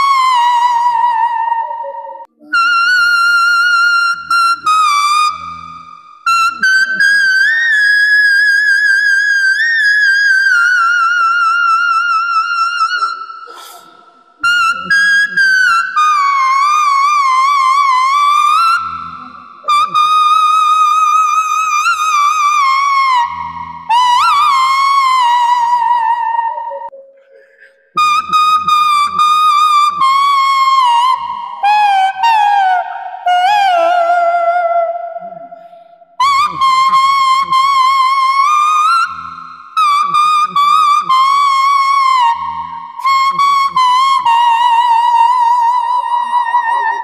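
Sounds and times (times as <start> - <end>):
toy whistle melody: 1.7 - 34.2, 35.5 - 47.0.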